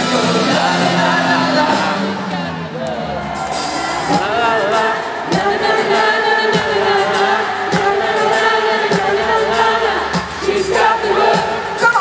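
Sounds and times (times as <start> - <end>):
live pop-rock band: 0.0 - 12.0
steady drum beat: 2.9 - 12.0.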